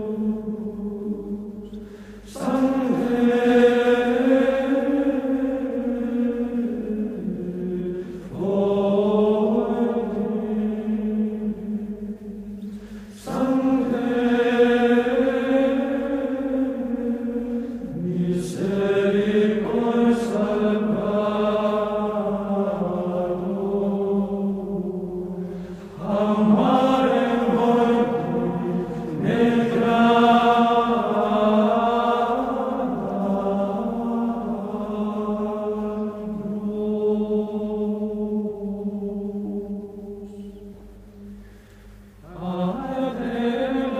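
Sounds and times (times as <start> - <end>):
choir singing slow chant: 0.0 - 43.9.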